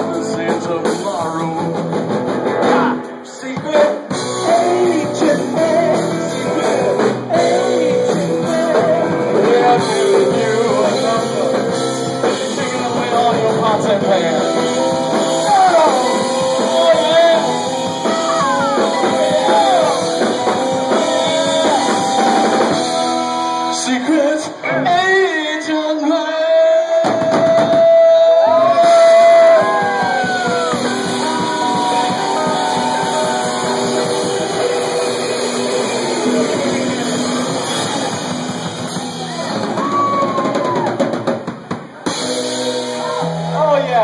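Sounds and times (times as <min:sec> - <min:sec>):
drum kit beating: 0:00.0 - 0:24.3, 0:26.9 - 0:44.0
electric guitar: 0:00.0 - 0:25.9, 0:26.8 - 0:44.0
rock band playing: 0:00.0 - 0:44.0
person singing: 0:02.6 - 0:40.9.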